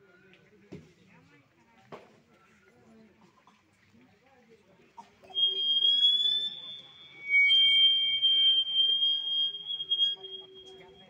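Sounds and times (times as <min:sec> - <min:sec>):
high-pitched microphone feedback squeal: 0:05.3 - 0:11.0.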